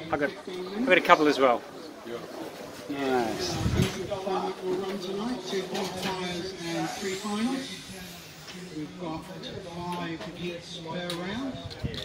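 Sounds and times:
faint high whine: 5.1s - 10.8s.

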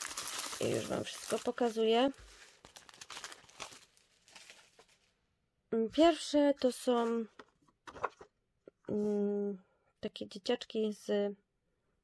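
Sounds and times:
paper and plastic bag crinkling: 0.0s - 5.1s.

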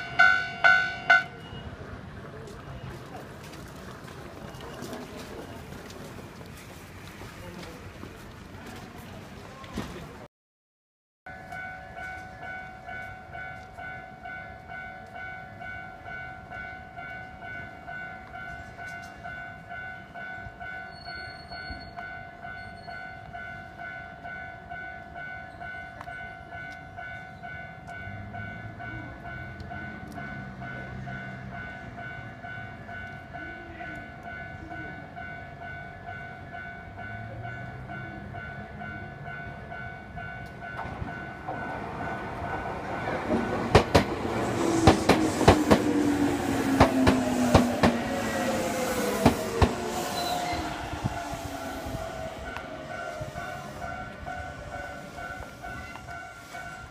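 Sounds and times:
level crossing alarm clanging: 0.0s - 1.8s
train arriving: 0.0s - 10.3s, 11.3s - 56.9s.

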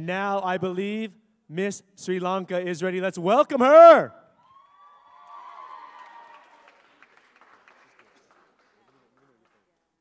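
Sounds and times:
drawn-out cheer: 4.4s - 6.8s
audience applause: 5.1s - 9.7s.

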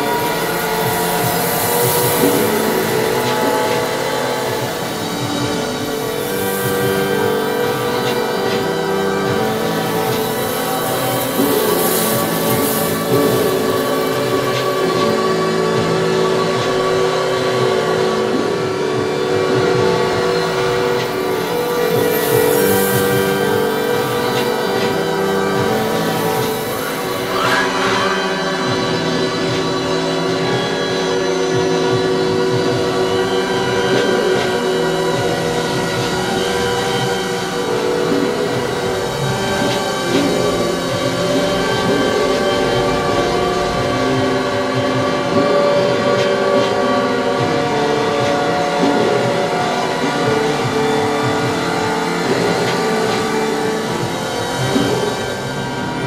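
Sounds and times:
electronic drone of layered tones: 0.0s - 56.0s
wavering high tone: 0.0s - 56.0s.

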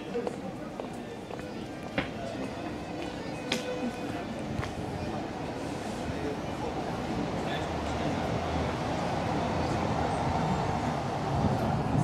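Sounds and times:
city background rumble: 0.0s - 12.0s.

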